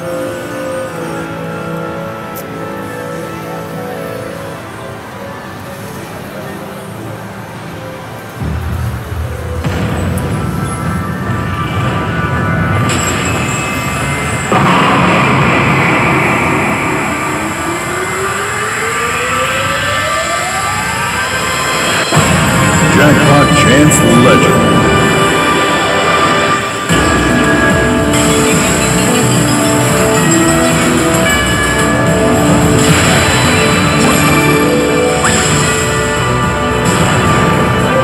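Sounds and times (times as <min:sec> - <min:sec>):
arcade game music: 0:00.0 - 0:38.0
rising electronic whine: 0:08.4 - 0:38.0.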